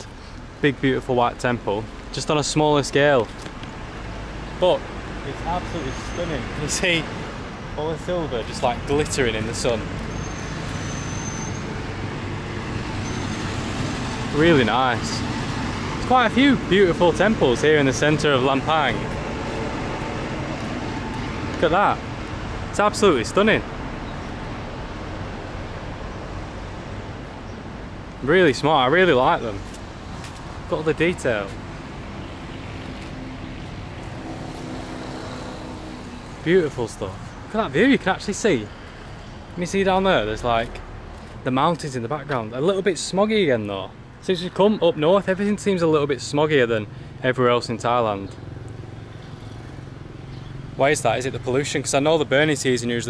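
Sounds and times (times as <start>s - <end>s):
vehicle engine hum: 0.0s - 42.4s
road traffic: 0.0s - 53.0s.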